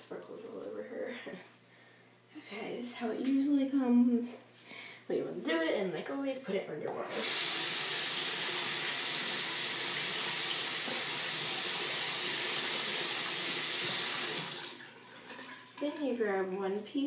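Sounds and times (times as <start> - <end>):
faucet running: 7.0 - 16.1.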